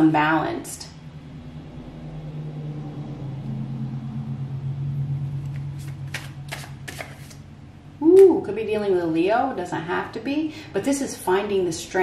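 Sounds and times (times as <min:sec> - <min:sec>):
low steady hum: 0:00.0 - 0:12.0
cards clicking: 0:06.1 - 0:07.4.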